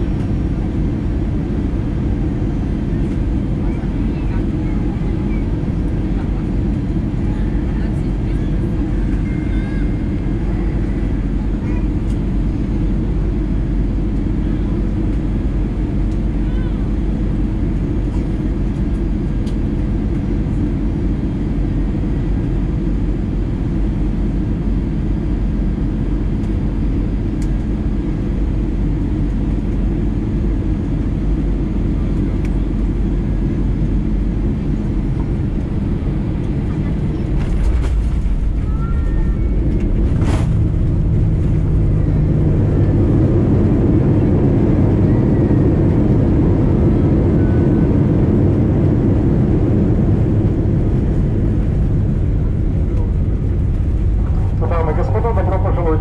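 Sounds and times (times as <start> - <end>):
airplane cabin rumble: 0.0 - 56.0.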